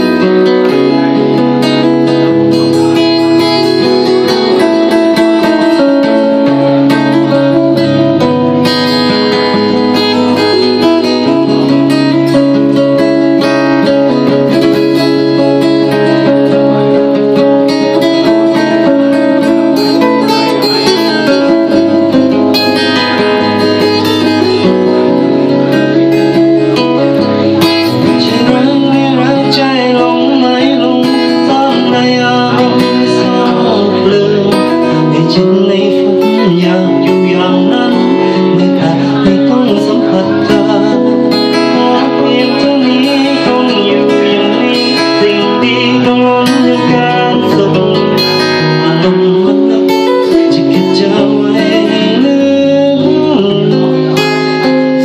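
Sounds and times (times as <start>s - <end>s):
acoustic guitar: 0.0s - 55.0s.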